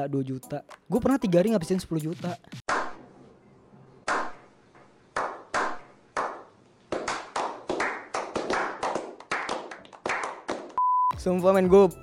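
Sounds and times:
group clapping hands: 0:02.7 - 0:03.0, 0:04.1 - 0:04.4, 0:05.1 - 0:10.8.

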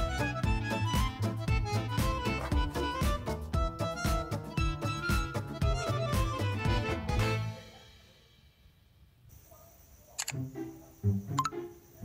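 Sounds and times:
background music with plucked notes: 0:00.0 - 0:07.6.

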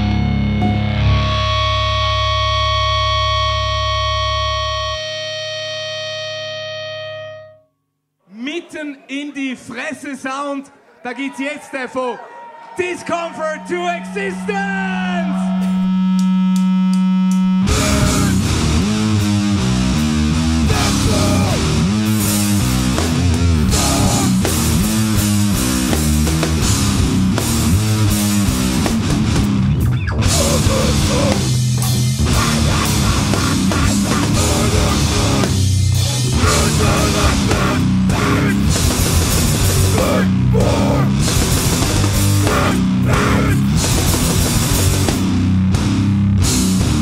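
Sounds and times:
fast distorted metal band: 0:17.6 - 0:47.0.

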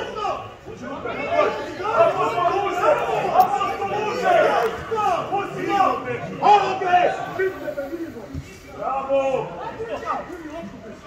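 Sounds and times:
chatter of several people: 0:00.0 - 0:11.0.

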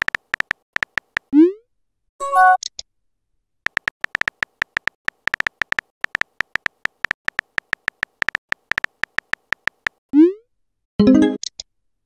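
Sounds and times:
phone keyboard clicky ticks: 0:00.0 - 0:01.3, 0:03.7 - 0:10.0.

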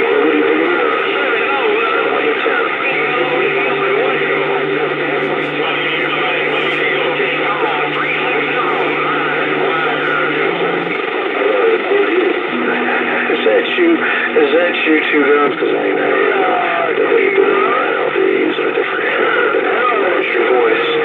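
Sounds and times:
different steady tone: 0:00.0 - 0:18.4
garbled radio voices: 0:00.0 - 0:21.0
radio static: 0:00.0 - 0:21.0
steady low tone: 0:00.6 - 0:18.2.

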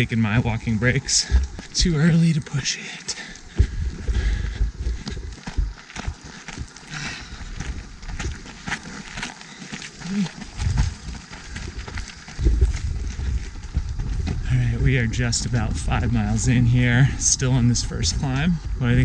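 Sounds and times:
wind rumbling on microphone: 0:00.0 - 0:02.6, 0:03.2 - 0:19.0
footsteps on dirt trail: 0:00.0 - 0:19.0
runner breathing: 0:00.6 - 0:19.0.

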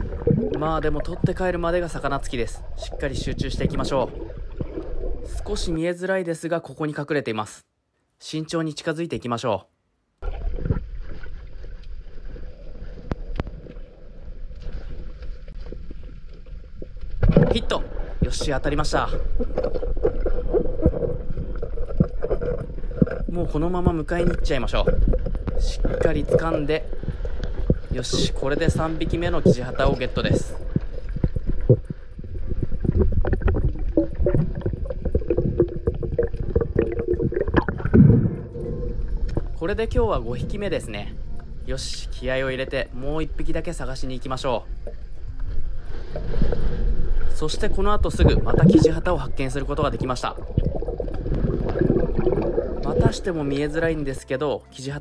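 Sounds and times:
underwater rumble and hiss: 0:00.0 - 0:05.8, 0:10.2 - 0:53.9.

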